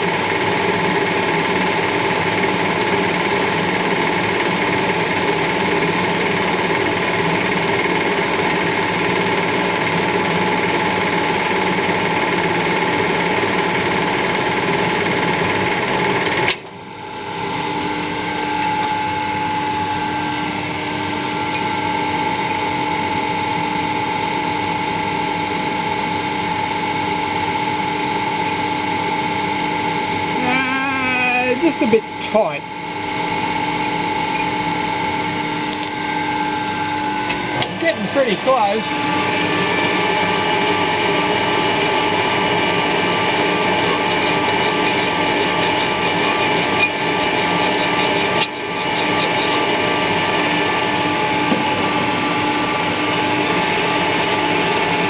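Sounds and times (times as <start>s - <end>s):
metal lathe running: 0.0s - 55.0s.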